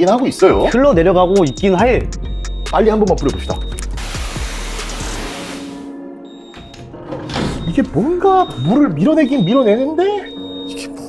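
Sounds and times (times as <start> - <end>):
water jet hissing on glass: 4.0 - 5.9.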